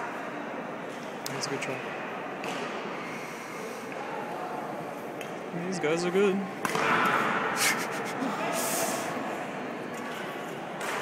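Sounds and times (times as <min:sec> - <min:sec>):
voices in gym hall: 0:00.0 - 0:11.0
short high scuffing hiss: 0:07.6 - 0:09.1.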